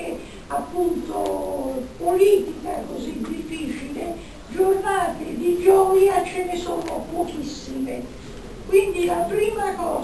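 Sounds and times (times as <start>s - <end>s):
woman speaking into a microphone: 0.0s - 10.0s.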